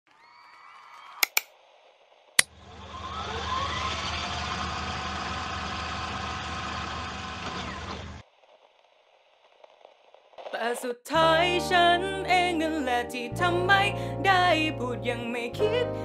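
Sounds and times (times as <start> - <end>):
sharp clicks: 1.2 - 1.5.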